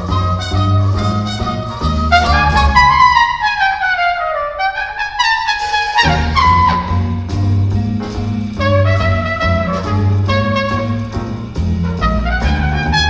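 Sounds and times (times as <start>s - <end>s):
trumpet solo: 0.0s - 7.3s, 8.6s - 13.0s
jazz big band: 0.0s - 13.0s.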